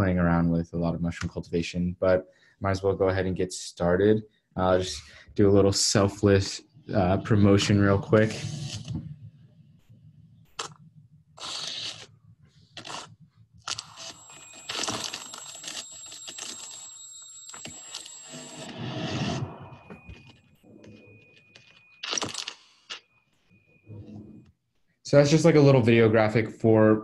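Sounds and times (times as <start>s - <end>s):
steady high tone: 4.8s - 22.4s
crunching scraping effects: 6.9s - 16.6s.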